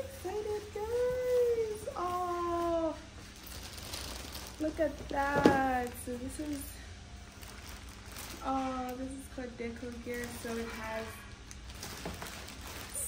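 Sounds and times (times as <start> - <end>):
packaging rustling: 0.0 - 13.0.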